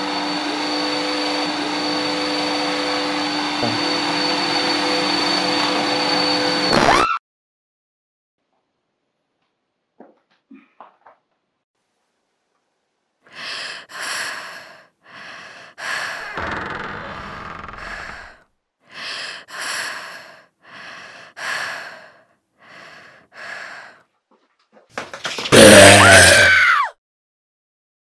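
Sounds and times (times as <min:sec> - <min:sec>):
vacuum cleaner motor whining: 0:00.0 - 0:06.9, 0:16.2 - 0:18.3
person breathing heavily: 0:13.3 - 0:16.4, 0:17.8 - 0:24.1.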